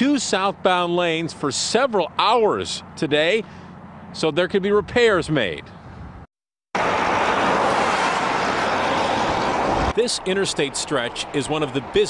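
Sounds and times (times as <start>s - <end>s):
highway traffic noise: 0.0s - 12.0s.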